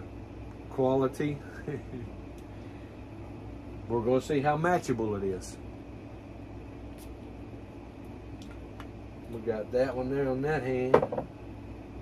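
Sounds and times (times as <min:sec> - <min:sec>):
room fan humming: 0:00.0 - 0:12.0.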